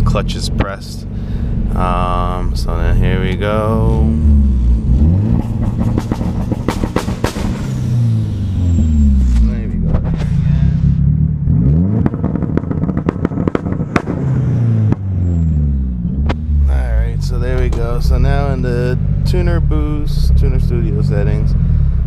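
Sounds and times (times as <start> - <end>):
car engine revving: 0.0 - 22.0
exhaust pops and cracks: 5.3 - 8.2, 9.1 - 10.7, 11.9 - 15.1, 17.4 - 18.2.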